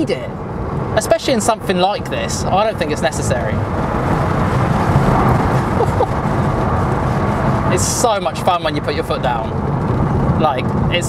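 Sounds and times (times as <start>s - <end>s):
tyre-on-road noise: 0.0s - 11.0s
wind rush: 0.0s - 11.0s.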